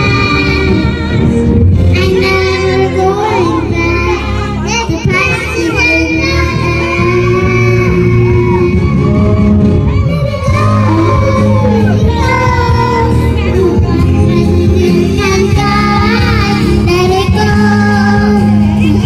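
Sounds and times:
backing music: 0.0s - 19.0s
girls singing into microphones: 0.0s - 19.0s.

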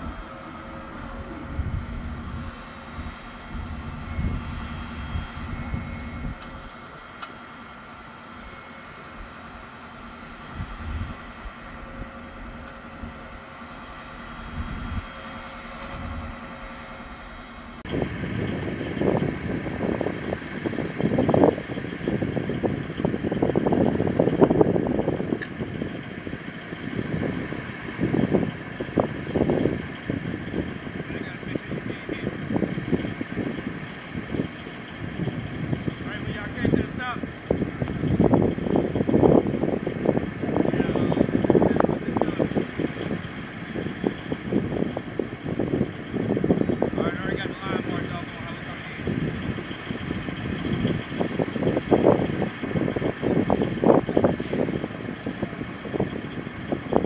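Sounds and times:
tracked vehicle diesel engine running: 0.0s - 57.0s.

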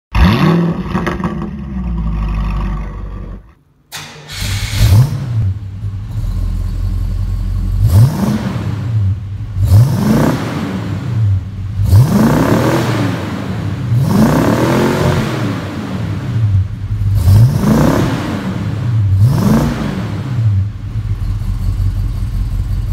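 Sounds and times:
car engine revving: 0.1s - 3.4s, 4.0s - 22.9s.

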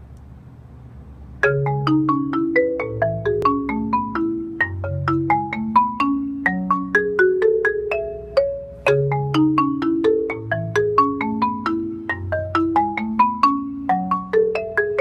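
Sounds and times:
marimba played with mallets: 1.4s - 15.0s.

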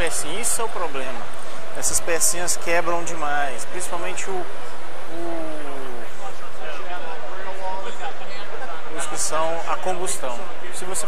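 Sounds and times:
crowd babble: 0.0s - 11.0s
man speaking: 5.1s - 6.4s.

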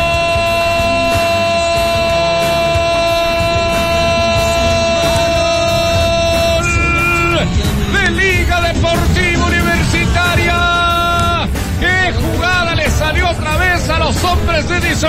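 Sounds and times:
background music: 0.0s - 15.0s
commentator shouting goal: 0.0s - 15.0s.

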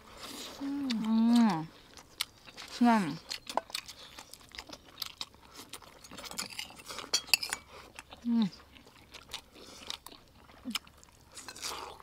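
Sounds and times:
chewing: 0.0s - 12.0s
cutlery clinking on plates: 6.3s - 7.7s.

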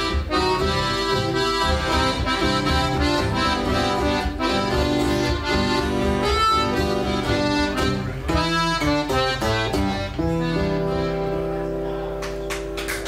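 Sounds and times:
piano accordion melody: 0.0s - 12.1s
acoustic guitar strumming: 0.0s - 12.8s.

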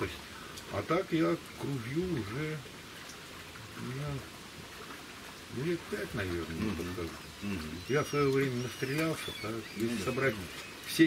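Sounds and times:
outdoor background hiss: 0.0s - 11.0s
man murmuring: 6.5s - 7.8s.

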